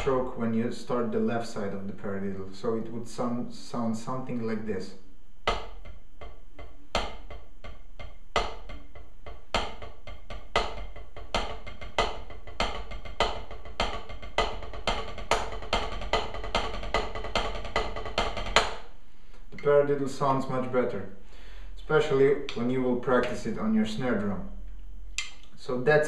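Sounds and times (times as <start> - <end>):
drumsticks tapping a practice pad: 0.0 - 0.3, 5.4 - 19.8, 25.1 - 25.5.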